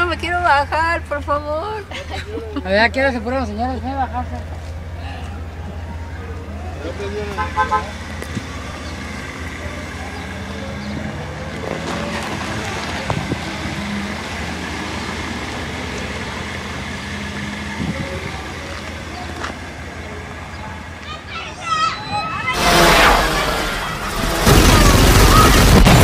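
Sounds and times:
car engine running: 0.0 - 21.6, 22.5 - 26.0.

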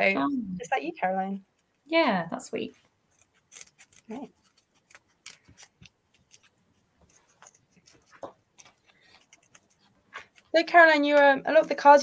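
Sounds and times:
scissors snipping paper: 3.1 - 12.0.

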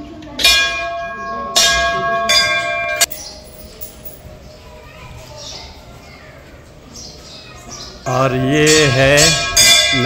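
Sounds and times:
hanging temple bell ringing: 0.4 - 4.8, 8.1 - 10.0.

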